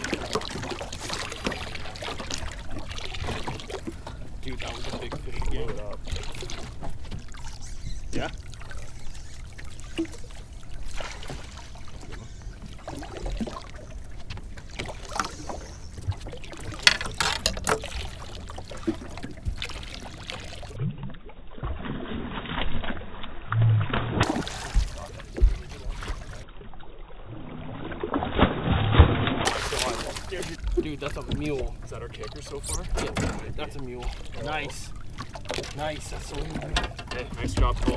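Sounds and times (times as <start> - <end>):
water lapping against boat hull: 0.0 - 37.9
knocks and clicks of handling: 32.9 - 33.5, 36.6 - 37.9.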